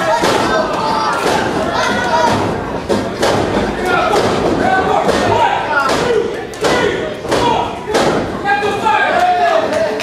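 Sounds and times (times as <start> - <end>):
crowd shouting: 0.0 - 2.6, 3.6 - 10.0
wrestling strikes thudding: 0.0 - 8.8.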